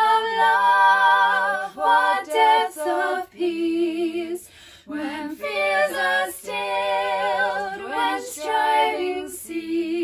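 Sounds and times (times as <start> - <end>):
woman singing hymn in harmony: 0.0 - 10.0.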